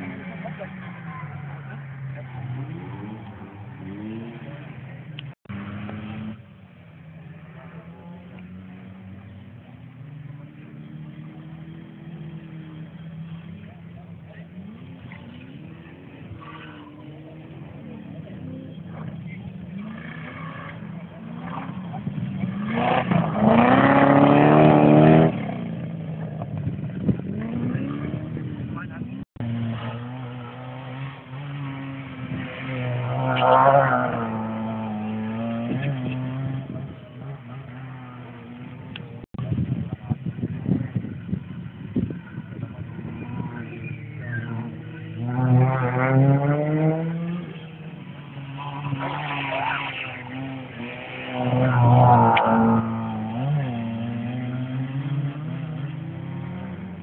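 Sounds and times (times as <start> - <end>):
rally car engine passing: 0.0 - 39.6, 40.4 - 57.0
rally car engine approaching: 0.0 - 57.0.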